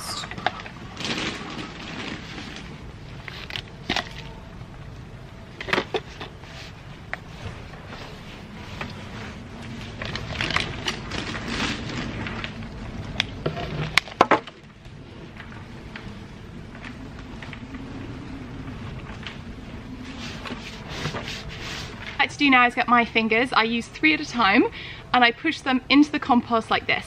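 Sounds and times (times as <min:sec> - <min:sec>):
compost rustling and scraping: 0:00.8 - 0:04.2, 0:06.0 - 0:14.0, 0:18.4 - 0:22.2.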